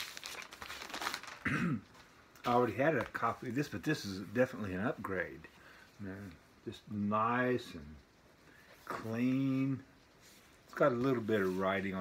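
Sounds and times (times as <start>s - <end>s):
cardboard record jacket rustling: 0.0s - 6.3s, 8.8s - 12.0s
person clearing throat: 1.4s - 1.9s.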